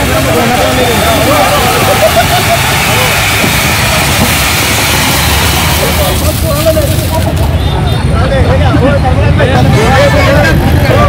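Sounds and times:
fountain fireworks hissing: 0:00.0 - 0:11.0
people talking: 0:00.0 - 0:11.0.

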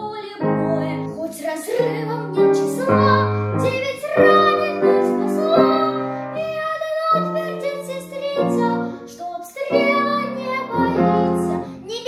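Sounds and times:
girl singing: 0:00.0 - 0:12.0
piano chords: 0:00.0 - 0:12.0.

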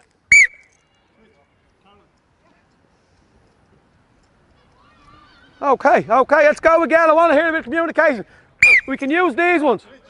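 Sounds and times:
pea whistle blast: 0:00.3 - 0:00.7, 0:08.6 - 0:08.9.

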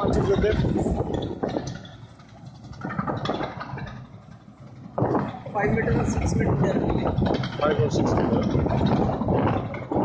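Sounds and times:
trencher engine running under load: 0:00.0 - 0:10.0.

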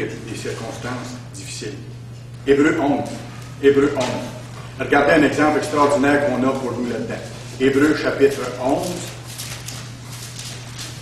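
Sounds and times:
steady low hum: 0:00.0 - 0:11.0
paper pages rustling: 0:05.8 - 0:11.0.

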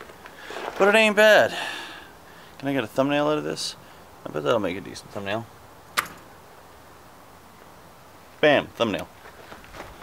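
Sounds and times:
background hiss: 0:00.0 - 0:10.0
sharp click: 0:06.0 - 0:06.3.

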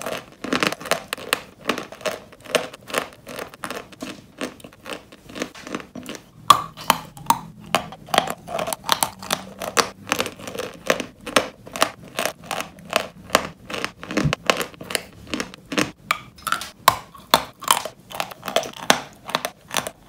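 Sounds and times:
crunching and chewing: 0:00.0 - 0:20.0.

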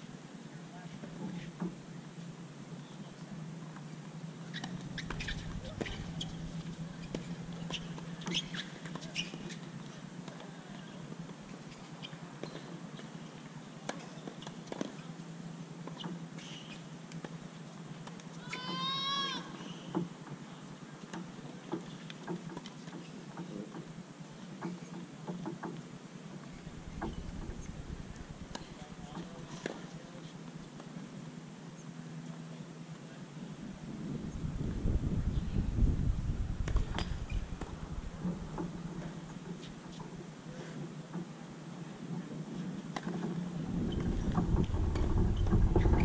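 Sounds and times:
steady low hum: 0:00.0 - 0:08.8, 0:25.9 - 0:46.0.

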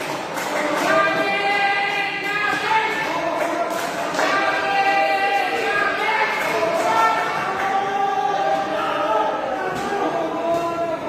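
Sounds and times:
group singing long notes: 0:00.0 - 0:11.0.

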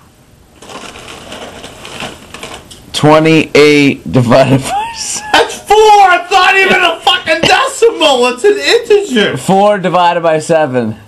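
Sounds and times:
rustling crackling noise: 0:00.5 - 0:03.0.

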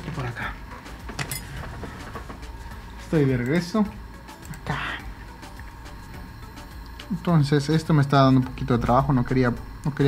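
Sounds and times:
low hum: 0:00.0 - 0:10.0
objects clattering on workbench: 0:01.0 - 0:02.5.

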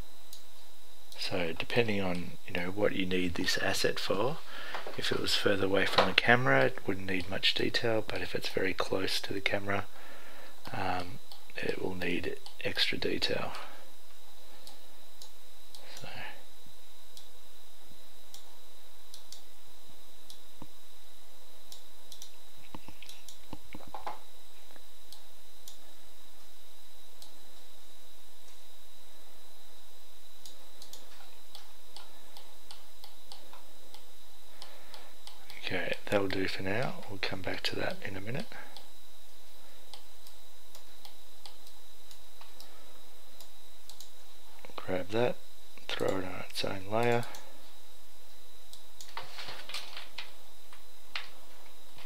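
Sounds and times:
faint high steady tone: 0:00.0 - 0:52.0
computer mouse clicks: 0:19.1 - 0:19.5, 0:21.7 - 0:24.1, 0:30.4 - 0:35.6, 0:43.4 - 0:44.2, 0:47.0 - 0:47.4.

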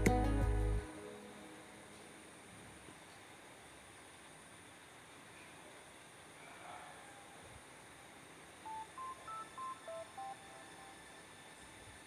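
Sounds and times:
faint hiss: 0:00.0 - 0:12.0
electronic beep melody: 0:08.7 - 0:11.0.

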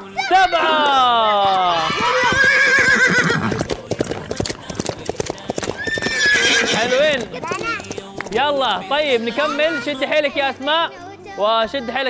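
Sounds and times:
galloping hoofbeats: 0:01.3 - 0:09.8
horse whinny: 0:01.8 - 0:03.7, 0:05.7 - 0:07.3.

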